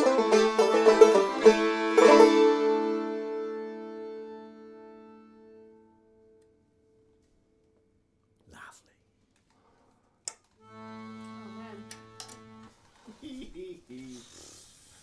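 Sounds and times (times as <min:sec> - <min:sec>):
accordion chord: 0:00.0 - 0:06.4, 0:10.6 - 0:12.8.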